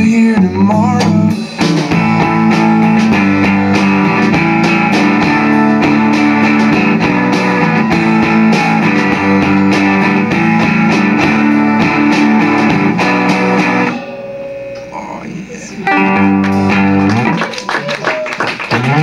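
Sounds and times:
drums steady beat: 0.0s - 17.5s
strummed electric guitar: 0.0s - 17.8s.

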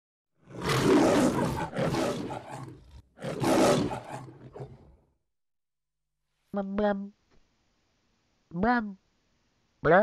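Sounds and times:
lion roaring: 0.4s - 5.1s.

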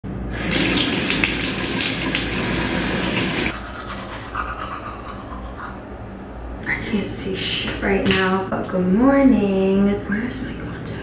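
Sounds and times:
tap water running into sink: 0.3s - 3.5s.

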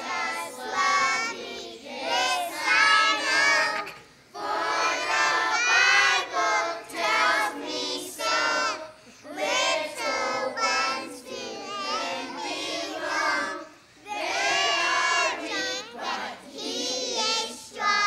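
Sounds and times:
children singing: 0.0s - 18.0s.

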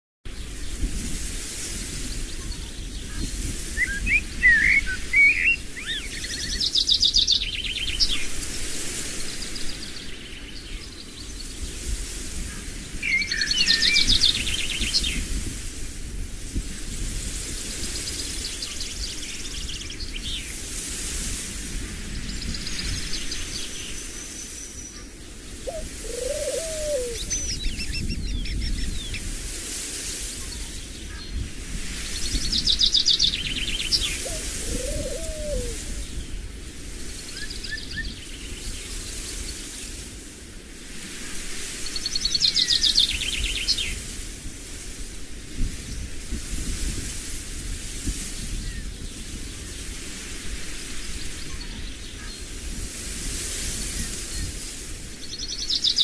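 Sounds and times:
songbirds singing: 2.1s - 8.6s, 12.6s - 15.2s, 22.2s - 29.3s, 30.4s - 36.4s, 41.8s - 44.0s, 55.2s - 56.0s
short low bird calls: 3.8s - 6.7s, 25.7s - 28.0s.

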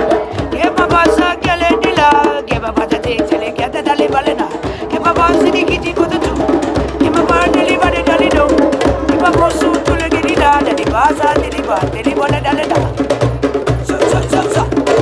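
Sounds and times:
hand drums beaten fast: 0.0s - 15.0s
voices chanting: 0.0s - 15.0s.

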